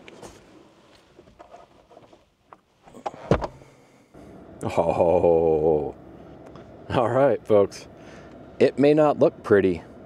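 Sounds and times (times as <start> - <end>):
sharp thump: 3.2 - 3.6.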